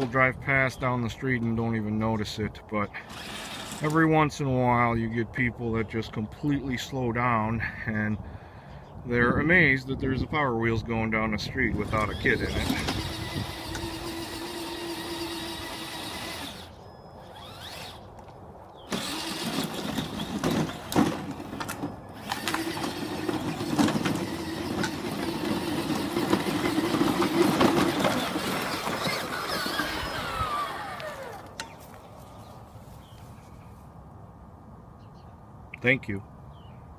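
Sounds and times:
electric motors whining: 3.0 - 4.0, 11.8 - 32.0.

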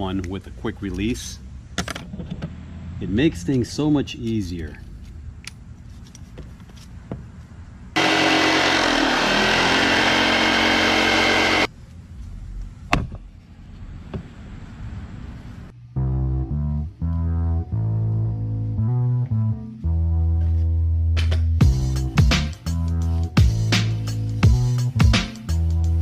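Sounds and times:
jigsaw cutting wood: 8.0 - 11.7
music with heavy bass line: 21.6 - 26.0.

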